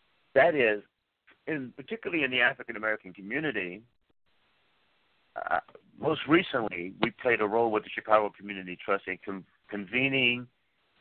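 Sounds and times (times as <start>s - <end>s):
man speaking over telephone: 0.4s - 4.0s, 5.4s - 10.6s.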